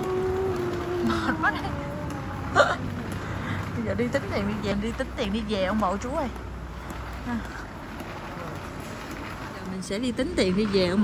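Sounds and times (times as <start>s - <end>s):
supermarket hum and murmur: 0.0s - 11.0s.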